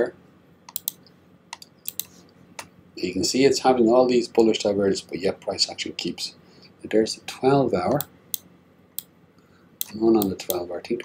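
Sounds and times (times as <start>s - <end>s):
computer mouse clicking: 0.7s - 2.1s.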